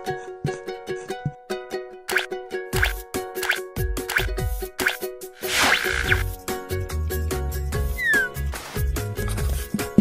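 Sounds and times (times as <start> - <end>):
falling plop sound effect: 4.8 - 6.2.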